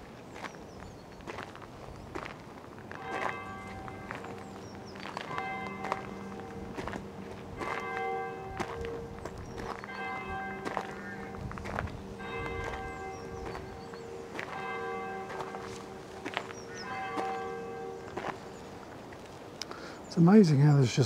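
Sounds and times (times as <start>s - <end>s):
footsteps on gravel: 0.0s - 19.5s
church bell ringing: 2.9s - 19.0s.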